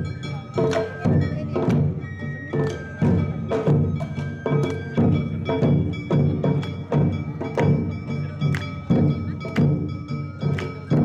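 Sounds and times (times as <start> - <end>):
drums in dance rhythm: 0.0 - 11.0
held high melody line: 0.0 - 11.0.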